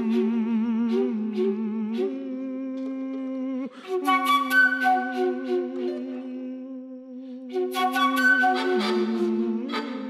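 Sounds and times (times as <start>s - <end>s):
soft flute notes: 3.8s - 10.0s.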